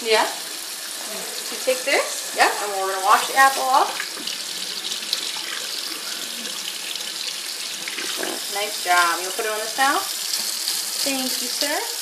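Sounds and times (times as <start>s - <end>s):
faucet water splashing into sink: 0.0s - 12.0s.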